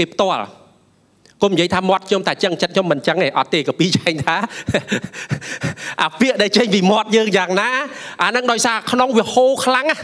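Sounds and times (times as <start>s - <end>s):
man speaking: 1.3s - 10.0s
man laughing breathily: 4.3s - 6.0s.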